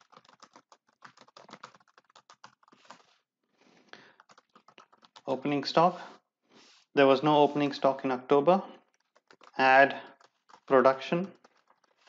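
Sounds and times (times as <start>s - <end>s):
computer keyboard typing: 0.0s - 3.2s, 4.0s - 5.3s, 8.8s - 12.0s.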